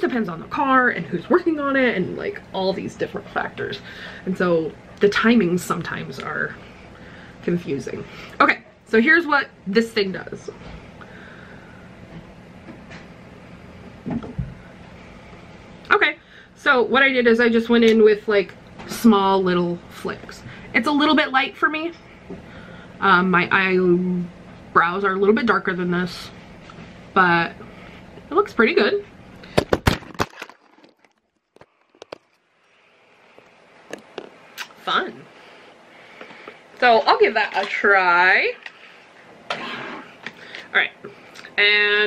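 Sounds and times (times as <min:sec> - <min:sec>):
low room hum: 0:00.0 - 0:42.0.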